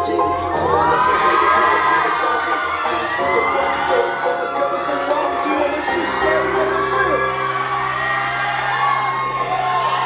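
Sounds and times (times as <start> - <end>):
fans screaming and cheering: 0.0 - 10.0.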